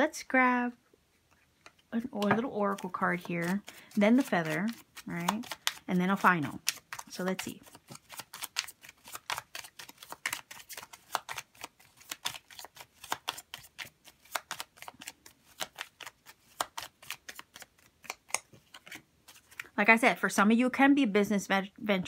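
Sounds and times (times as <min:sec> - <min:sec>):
cards being shuffled: 0:02.1 - 0:19.8.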